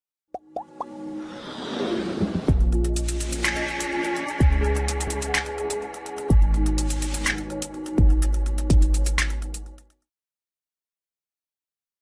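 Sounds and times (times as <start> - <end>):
whoosh: 1.2 - 2.9.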